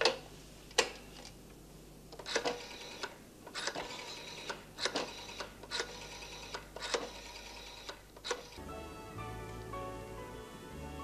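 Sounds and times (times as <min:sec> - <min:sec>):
rotary telephone dial clicking: 0:02.2 - 0:08.6.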